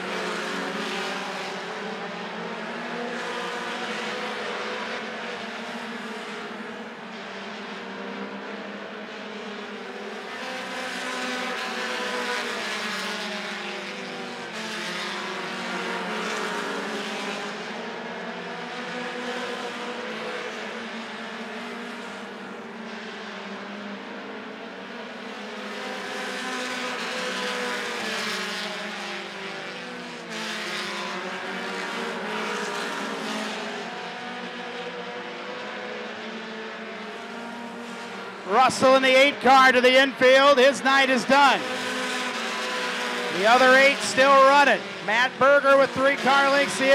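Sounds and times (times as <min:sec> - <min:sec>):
racing car engines: 0:00.0 - 0:46.9.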